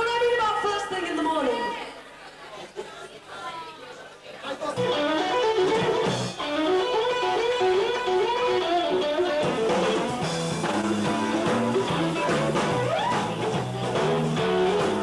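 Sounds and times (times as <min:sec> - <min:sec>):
electric guitar riff: 0:04.8 - 0:15.0
low bass notes: 0:09.4 - 0:15.0.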